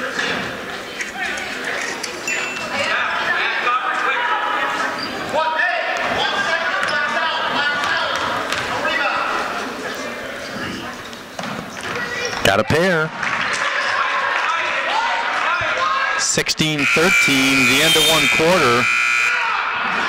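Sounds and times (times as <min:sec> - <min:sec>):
voices and chatter: 0:00.0 - 0:20.0.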